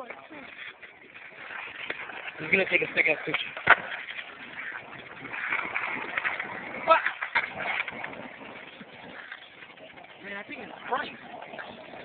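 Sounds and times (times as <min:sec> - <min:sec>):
voices: 0:08.8 - 0:12.0.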